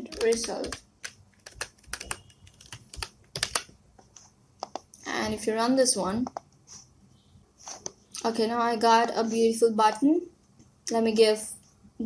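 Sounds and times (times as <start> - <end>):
keyboard typing: 0.0 - 5.0, 6.2 - 6.6.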